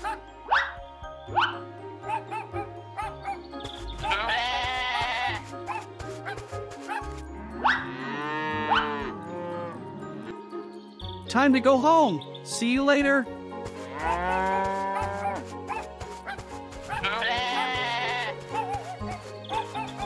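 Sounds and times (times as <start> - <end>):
cartoon background music: 0.0 - 20.0
wavering bleat: 4.0 - 5.4, 7.6 - 9.8, 13.9 - 15.4, 17.0 - 18.4
cow moo: 7.4 - 10.4, 13.9 - 15.4.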